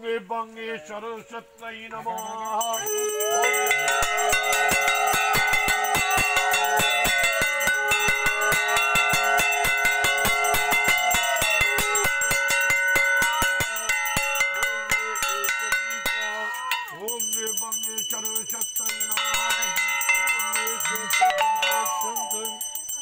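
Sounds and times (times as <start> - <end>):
hand bell ringing rapidly: 2.2 - 23.0
conch shell blowing: 2.9 - 14.9.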